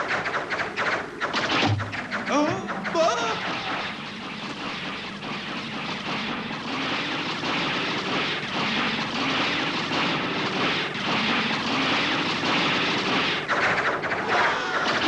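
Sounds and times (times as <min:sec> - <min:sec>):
arrows whooshing through air: 0:00.0 - 0:15.0.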